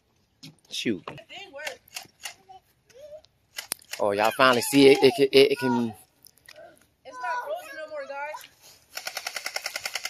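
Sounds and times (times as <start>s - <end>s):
children calling in the distance: 3.9s - 8.6s.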